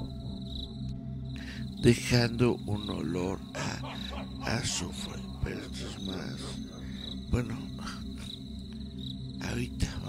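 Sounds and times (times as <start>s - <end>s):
man's voice: 1.4s - 8.4s, 9.4s - 10.0s.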